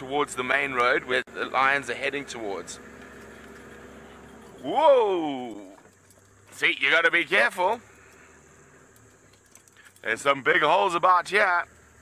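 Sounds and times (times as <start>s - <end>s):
vehicle driving off-road hum: 0.0s - 12.0s
faint light rattles: 2.8s - 10.4s.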